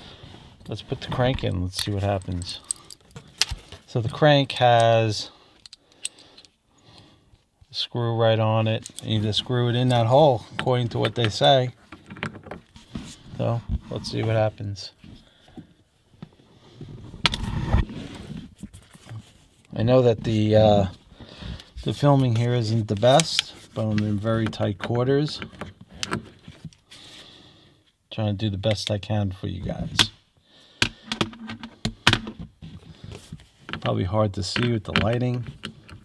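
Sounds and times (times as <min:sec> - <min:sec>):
handling noise rustling: 0:00.0 - 0:06.6, 0:08.3 - 0:15.3.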